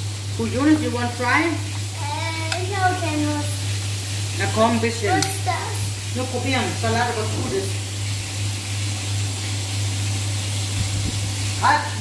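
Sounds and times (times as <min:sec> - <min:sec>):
food frying in oil: 0:00.0 - 0:12.0
person talking: 0:04.4 - 0:07.7.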